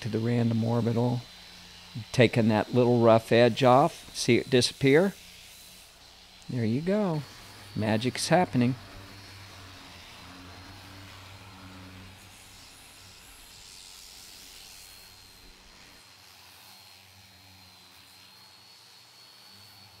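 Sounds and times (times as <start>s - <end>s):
orbital sander whining: 0.0s - 20.0s.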